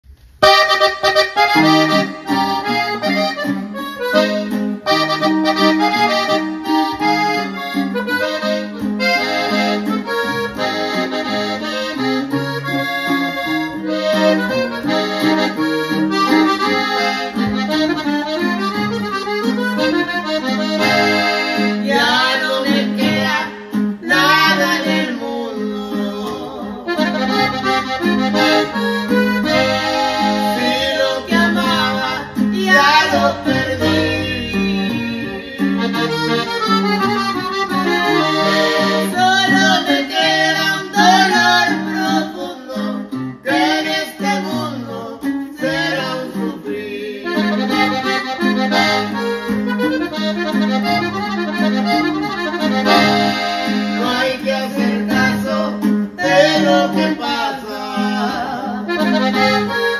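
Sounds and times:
accordion melody: 0:00.0 - 0:59.9
strummed guitar chords and bass: 0:00.2 - 0:59.9.

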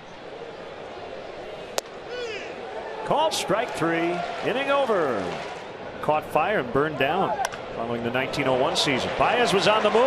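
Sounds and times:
baseball bat crack: 0:01.6 - 0:02.6, 0:07.4 - 0:07.7.

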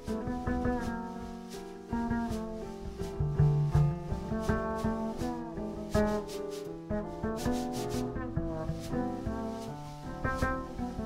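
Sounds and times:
drum brush swishes: 0:00.0 - 0:11.0
piano chords: 0:00.0 - 0:11.0
plucked double bass: 0:00.0 - 0:11.0.

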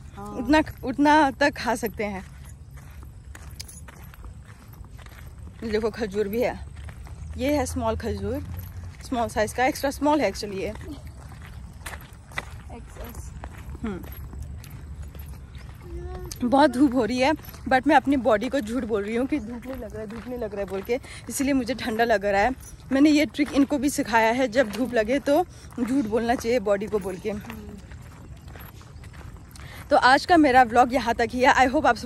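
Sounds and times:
footsteps: 0:00.0 - 0:32.0
person speaking: 0:00.1 - 0:01.0
woman speaking: 0:00.1 - 0:02.3, 0:05.6 - 0:06.7, 0:07.3 - 0:11.1, 0:12.6 - 0:14.2, 0:15.8 - 0:28.0, 0:29.8 - 0:32.0.

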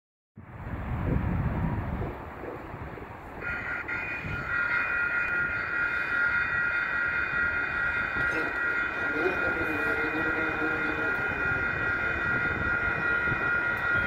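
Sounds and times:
railroad crossing warning bell: 0:03.2 - 0:14.0.

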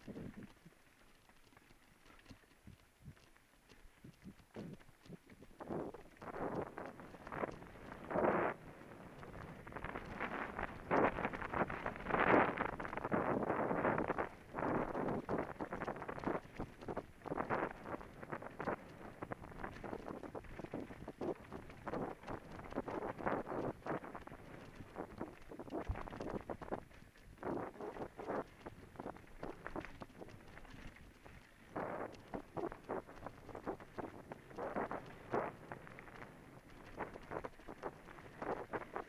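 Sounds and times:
wind noise on microphone: 0:00.0 - 0:00.7, 0:02.2 - 0:39.0
bike tyres rolling over dirt: 0:00.0 - 0:39.0.

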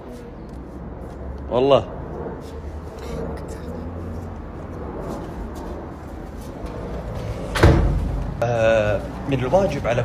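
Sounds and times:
loud thump: 0:07.5 - 0:08.3.

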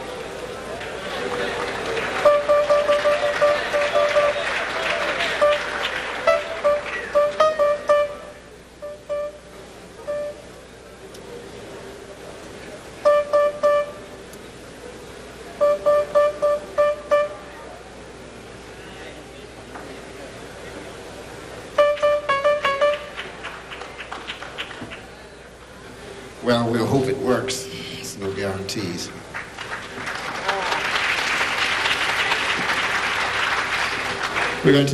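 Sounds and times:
murmur of voices: 0:00.0 - 0:34.9.

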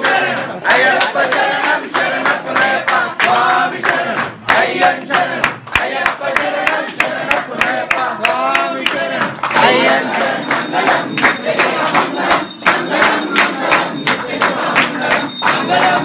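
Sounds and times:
group singing a devotional chant: 0:00.0 - 0:16.0
rhythmic hand clapping: 0:00.0 - 0:16.0.

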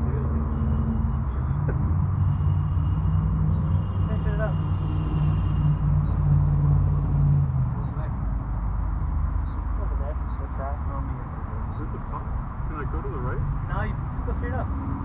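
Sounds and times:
vehicle engine humming: 0:00.0 - 0:15.0.

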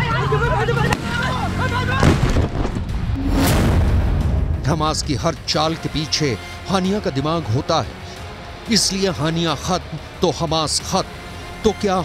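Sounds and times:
men shouting: 0:00.0 - 0:02.0
low rumble: 0:02.0 - 0:06.0.

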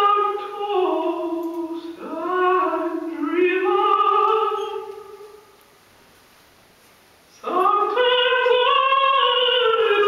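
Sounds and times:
solo singing in high voice: 0:00.0 - 0:05.6, 0:07.3 - 0:10.0.

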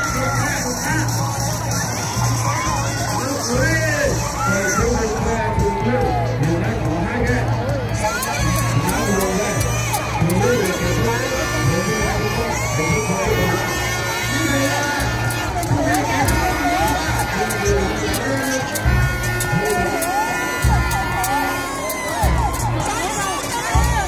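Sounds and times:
crowd shouting and cheering: 0:00.0 - 0:24.0
music playing: 0:00.0 - 0:24.0.

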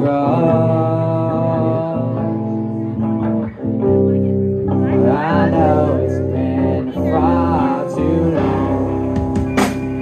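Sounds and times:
live rock band with electric guitars: 0:00.0 - 0:10.0.

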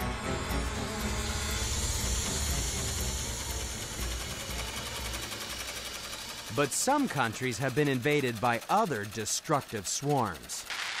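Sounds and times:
locust swarm whirring: 0:00.0 - 0:11.0.

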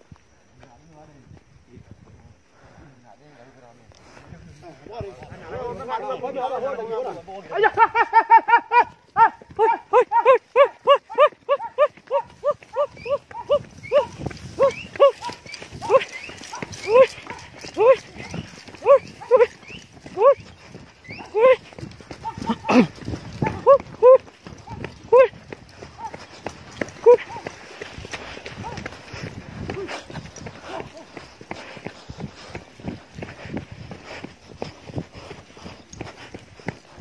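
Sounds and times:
running footsteps on stony path: 0:00.0 - 0:37.0
men shouting war cries: 0:04.7 - 0:20.5, 0:21.1 - 0:27.6, 0:29.6 - 0:31.2.

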